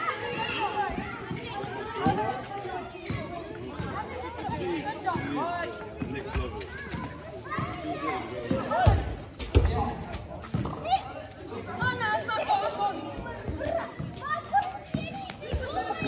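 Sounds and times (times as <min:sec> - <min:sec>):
children shouting: 0:00.0 - 0:05.9, 0:06.6 - 0:09.0, 0:10.8 - 0:16.0.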